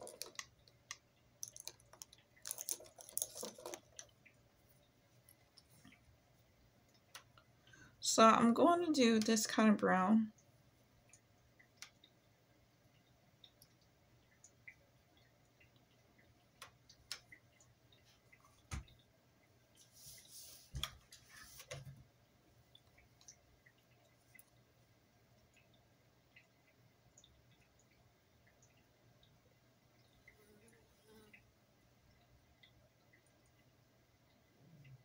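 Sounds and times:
faint scattered clicks: 13.0s - 19.1s.

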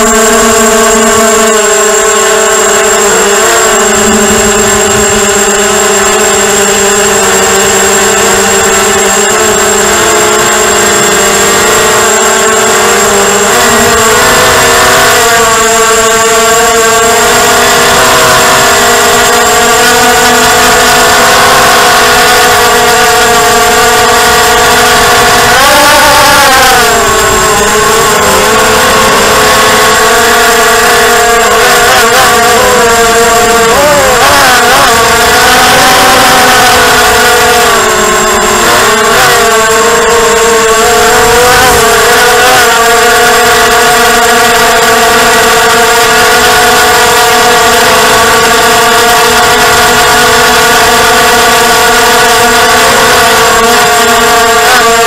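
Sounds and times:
thin high steady tone: 0.0s - 54.6s
drone motors and propellers whining: 0.0s - 55.0s.

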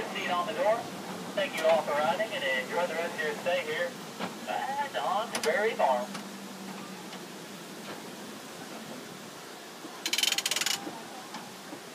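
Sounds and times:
ride train rumbling on track: 0.0s - 11.9s.

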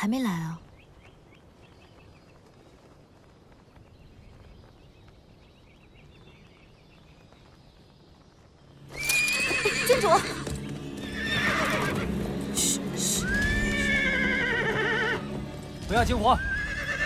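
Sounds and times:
horse neighing loudly: 8.9s - 12.1s, 13.2s - 15.2s, 16.4s - 17.0s.

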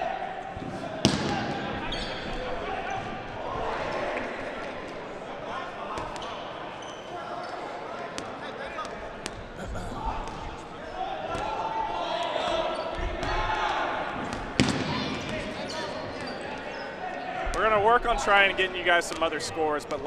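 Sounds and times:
chatter of voices in a gym: 0.0s - 20.0s.

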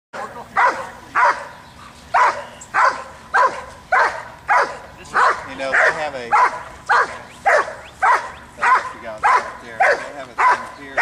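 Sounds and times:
dog barking: 0.6s - 11.0s.

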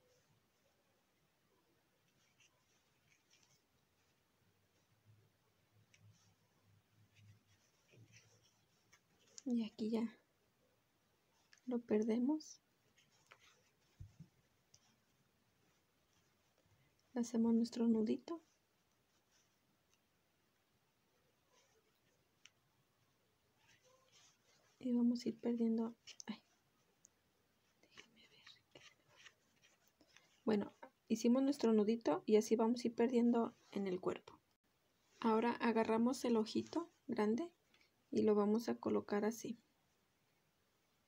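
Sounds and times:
soft rustles of handling yarn: 0.0s - 41.0s.

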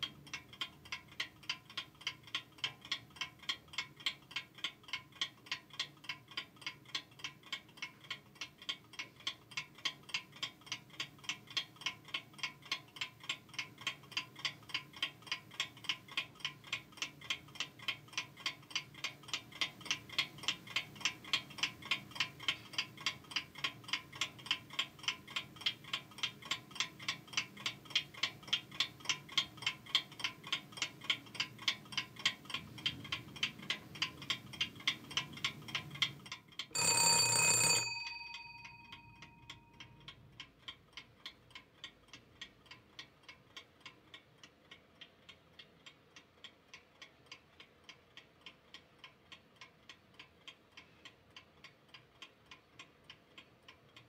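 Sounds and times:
clock ticking: 0.0s - 54.0s
bell ringing: 36.8s - 39.8s.

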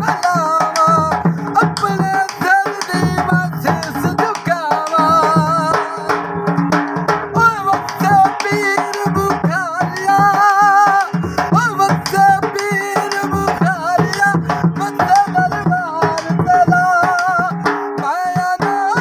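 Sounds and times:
man singing ornamented notes: 0.0s - 6.7s, 7.3s - 19.0s
dhol drum beating: 0.0s - 19.0s.

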